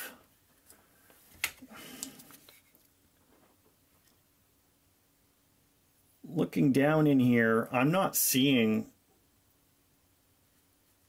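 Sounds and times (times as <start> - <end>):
rubbing and rustling: 0.4 - 4.1.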